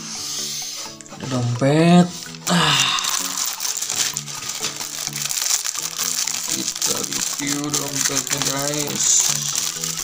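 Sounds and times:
background music: 0:00.0 - 0:10.0
wrapping crinkling: 0:02.1 - 0:10.0.

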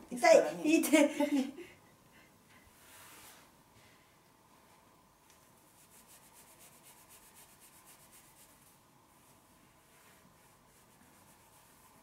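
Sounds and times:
hands rubbing fabric sleeve: 0:05.6 - 0:12.0.

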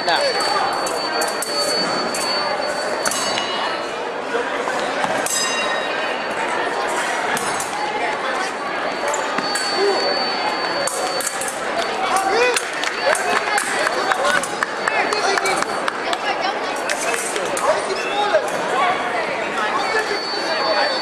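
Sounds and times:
crowd voices in large hall: 0:00.0 - 0:21.0
fencing blades clinking: 0:00.2 - 0:03.8, 0:06.9 - 0:07.9, 0:09.0 - 0:14.6, 0:16.7 - 0:18.6.

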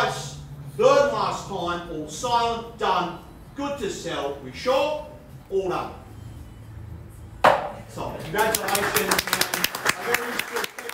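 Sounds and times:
gavel strike: 0:07.4 - 0:07.8.

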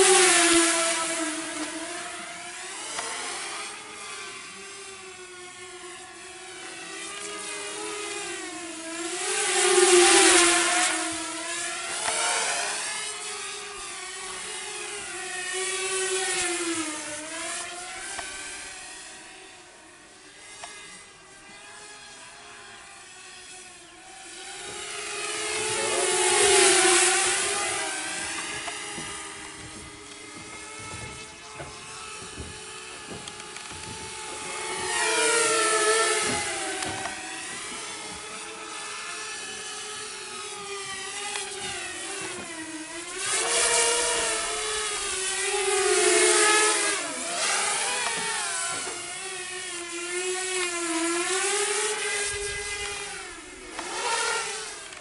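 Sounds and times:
quadcopter buzzing: 0:00.0 - 0:55.0.

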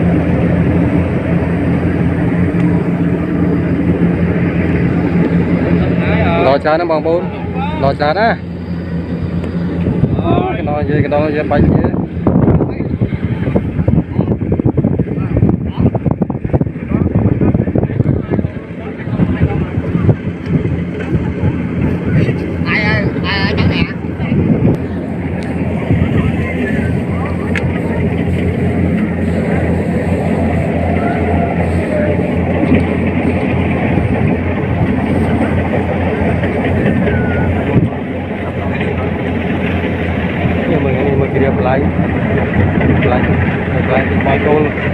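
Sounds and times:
combine harvester engine hum: 0:00.0 - 0:44.9
wind on microphone: 0:00.0 - 0:44.9
man talking: 0:05.7 - 0:08.5, 0:10.1 - 0:14.4, 0:40.5 - 0:42.0, 0:42.8 - 0:44.9.

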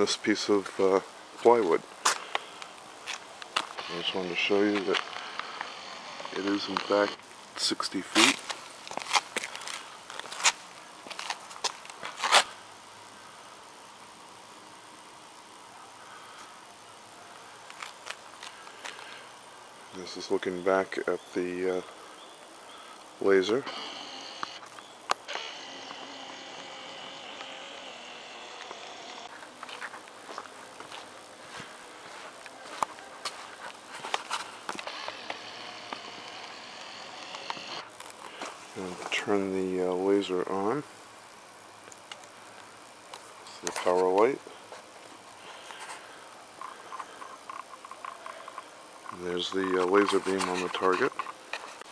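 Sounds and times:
high insect chorus: 0:00.0 - 0:51.9
footsteps scuffing on gritty pavement: 0:08.0 - 0:12.5, 0:29.3 - 0:34.9.

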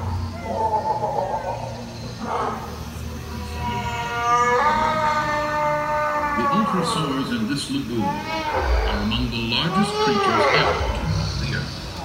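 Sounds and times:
dinosaur call over speakers: 0:00.0 - 0:12.0
steady low hum: 0:00.0 - 0:12.0.

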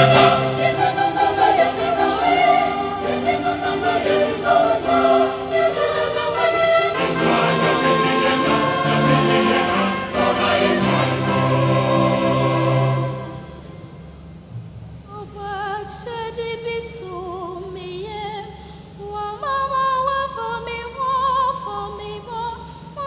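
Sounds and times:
trombone: 0:00.0 - 0:01.0
trumpets: 0:00.0 - 0:13.8
mixed choir singing chords: 0:00.0 - 0:14.0.

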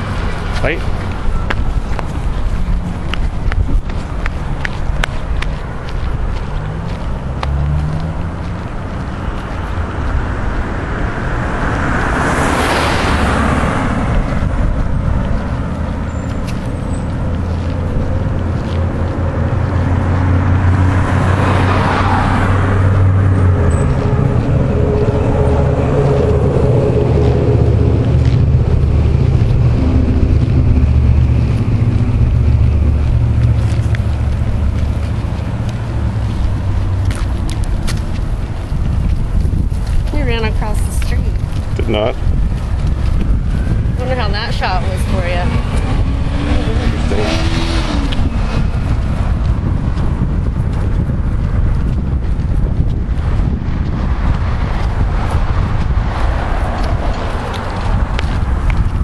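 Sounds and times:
road traffic rumble: 0:00.0 - 0:59.0
vehicles passing by: 0:00.0 - 0:59.0.

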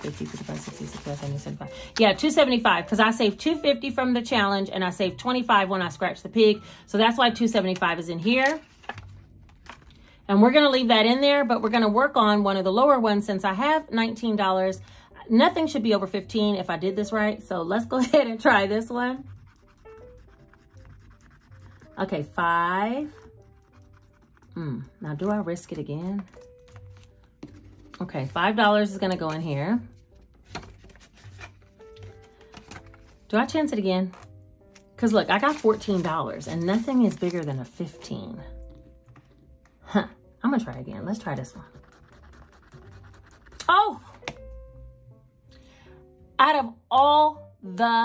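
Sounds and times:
fingernail scratching card: 0:00.0 - 0:01.6, 0:19.2 - 0:22.0, 0:23.0 - 0:25.3, 0:41.5 - 0:43.7
quiet background music: 0:00.0 - 0:48.0.

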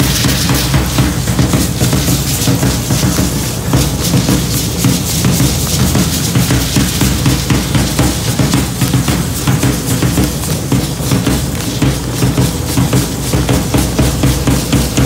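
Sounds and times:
drum beaten in quick rhythm: 0:00.0 - 0:15.0.

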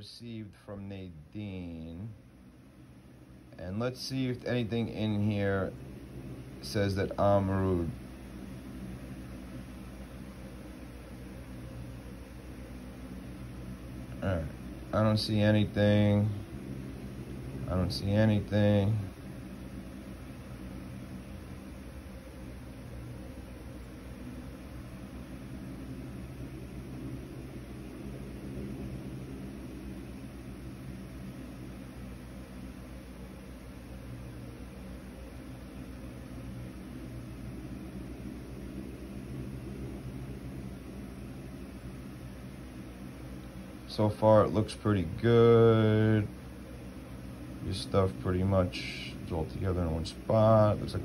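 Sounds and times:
appliance humming with hiss: 0:00.0 - 0:51.0.

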